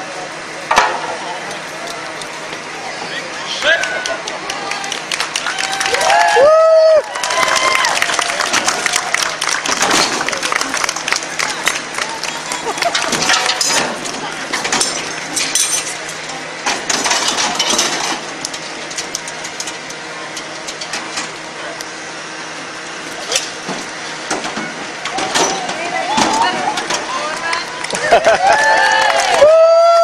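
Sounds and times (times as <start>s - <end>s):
crowd chatter: 0.0s - 29.6s
metal tools clinking and knocking: 12.6s - 16.2s.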